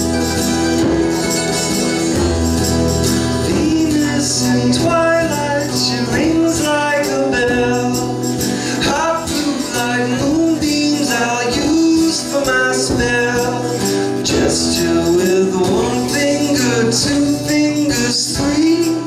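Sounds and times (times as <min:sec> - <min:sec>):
acoustic guitar strumming: 0:00.0 - 0:19.0
hand drum percussion: 0:00.0 - 0:19.0
mandolin: 0:00.0 - 0:19.0.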